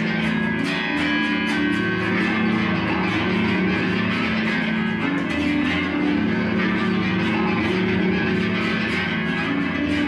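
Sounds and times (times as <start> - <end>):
electric guitar ringing notes: 0.0 - 10.0.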